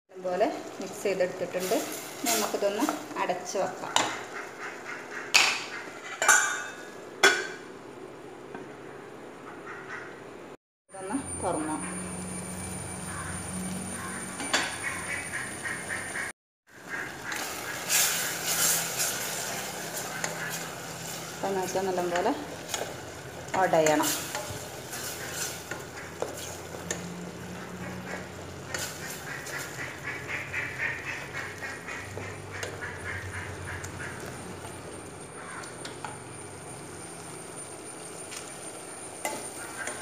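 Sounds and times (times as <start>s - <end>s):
tomatoes sizzling in a pot: 0.1s - 7.7s, 16.7s - 40.0s
wooden spoon scraping a pot: 23.6s - 27.1s.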